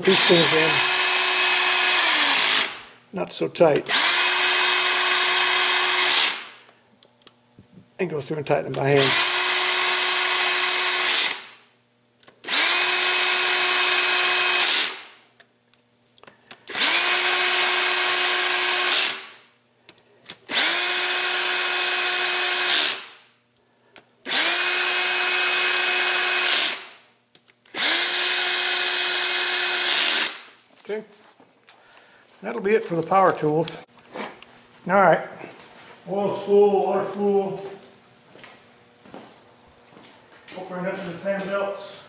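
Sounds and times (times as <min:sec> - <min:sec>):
power drill whining: 0:00.0 - 0:02.8, 0:03.9 - 0:06.6, 0:09.0 - 0:11.6, 0:12.4 - 0:15.1, 0:16.7 - 0:19.3, 0:20.5 - 0:23.2, 0:24.3 - 0:27.0, 0:27.7 - 0:30.5.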